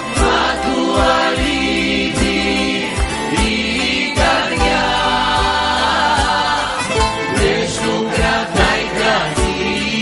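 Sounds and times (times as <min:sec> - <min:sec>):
choir singing: 0:00.0 - 0:10.0
plucked-string accompaniment: 0:00.0 - 0:10.0.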